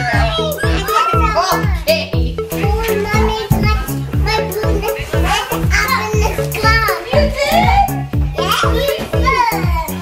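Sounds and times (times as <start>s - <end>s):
children calling out: 0.0s - 10.0s
upbeat music with kick drum: 0.0s - 10.0s.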